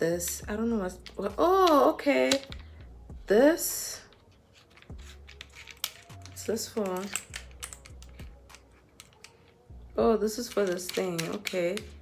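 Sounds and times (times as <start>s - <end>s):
plastic clamp clicks and taps: 1.0s - 2.7s, 5.7s - 9.4s, 10.5s - 12.0s.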